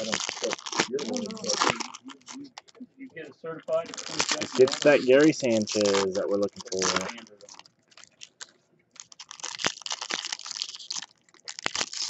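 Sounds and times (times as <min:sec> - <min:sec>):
foil wrapper crinkling: 0:00.0 - 0:02.8, 0:03.8 - 0:12.0.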